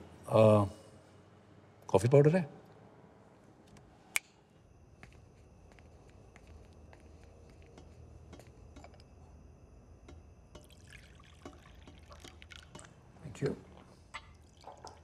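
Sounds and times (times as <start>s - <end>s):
glass and crockery clicking: 10.1s - 13.0s
coffee pouring into a cup: 10.5s - 15.0s.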